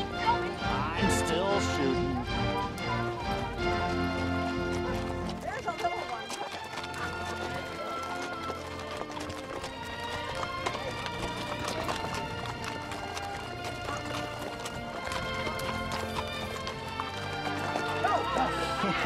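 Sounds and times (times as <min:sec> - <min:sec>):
background music: 0:00.0 - 0:19.0
horse hooves clip-clopping on trail: 0:00.0 - 0:19.0.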